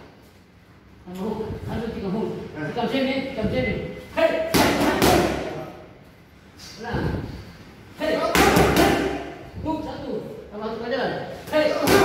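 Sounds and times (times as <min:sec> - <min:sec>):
boxing gloves striking mitts: 0:04.5 - 0:05.5, 0:08.3 - 0:09.3, 0:11.8 - 0:12.0.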